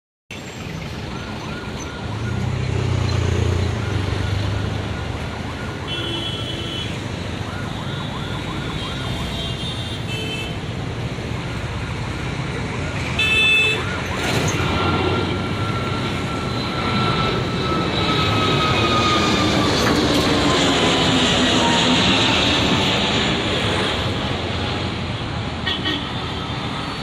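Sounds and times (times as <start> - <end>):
distant jet engines roaring: 0.3 - 27.0
outdoor background noise: 0.3 - 27.0.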